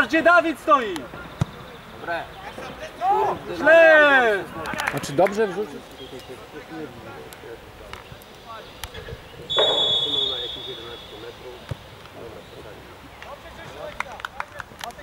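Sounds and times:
faint voices: 0.6 - 15.0
referee's whistle blast: 9.5 - 11.3.

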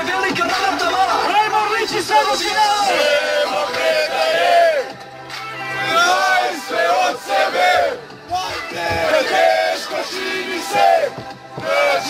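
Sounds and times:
young men chanting and shouting: 0.0 - 12.0.

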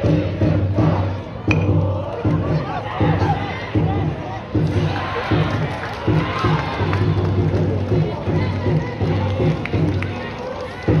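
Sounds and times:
crowd chanting: 0.0 - 11.0
music: 0.0 - 11.0.

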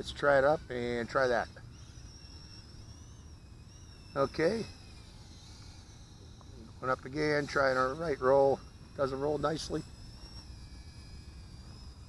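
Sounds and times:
high whine of drone motors: 0.0 - 12.0.

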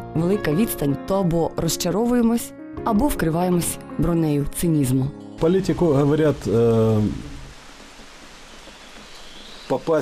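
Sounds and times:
outdoor background hiss: 4.9 - 10.0.

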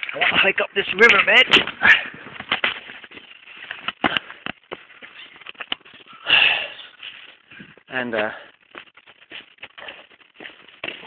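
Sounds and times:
footsteps crunching on gravel: 0.0 - 11.0.

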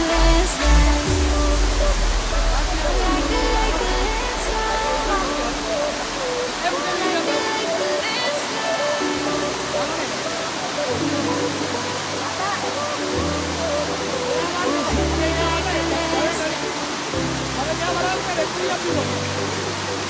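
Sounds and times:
person singing: 0.0 - 17.4
song playing: 0.0 - 20.0
waterfall rushing: 0.0 - 20.0.

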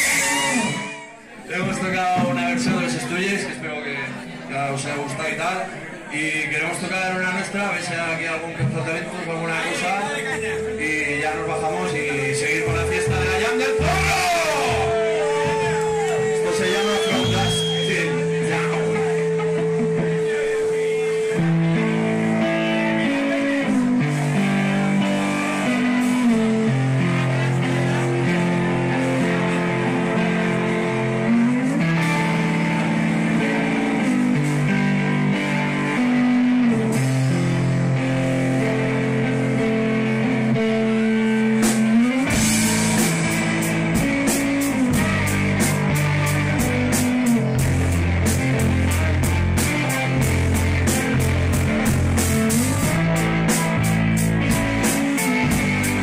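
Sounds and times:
bass guitar: 0.0 - 56.0
electric guitars playing a riff: 0.0 - 56.0
drum kit steady beat: 10.1 - 22.4, 41.4 - 56.0.

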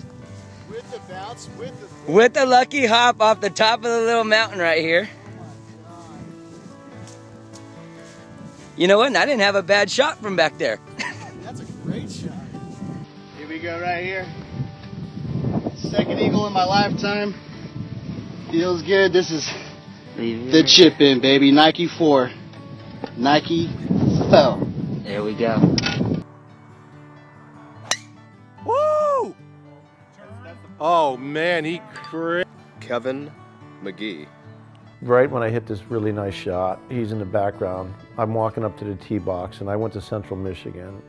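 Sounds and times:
soft background music: 0.0 - 41.0
golf club striking ball: 27.8 - 28.2.

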